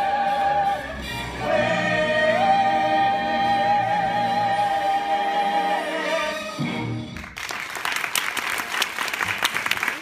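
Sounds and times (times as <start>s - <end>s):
music with singing: 0.0s - 7.1s.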